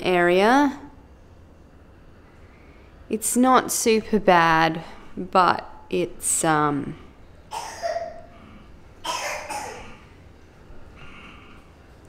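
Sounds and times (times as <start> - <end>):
woman coughing: 7.5 - 8.3, 9.0 - 10.0.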